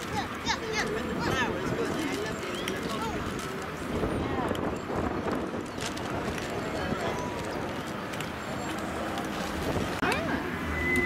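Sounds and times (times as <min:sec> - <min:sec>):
low boat engine rumble: 0:00.0 - 0:11.0
people's voices: 0:00.0 - 0:11.0
wind on microphone: 0:02.8 - 0:07.4, 0:09.5 - 0:10.1.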